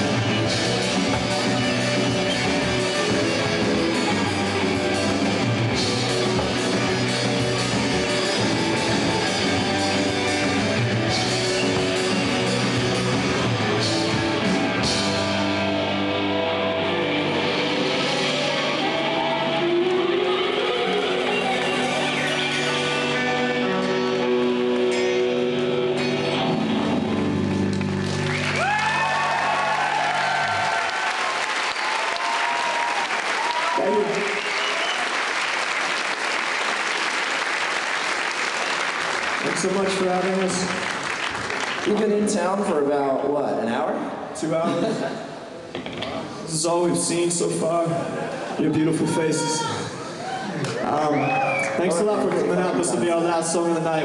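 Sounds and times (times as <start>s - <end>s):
live rock band playing: 0.0s - 28.5s
audience cheering and applauding: 27.6s - 42.3s, 49.6s - 53.7s.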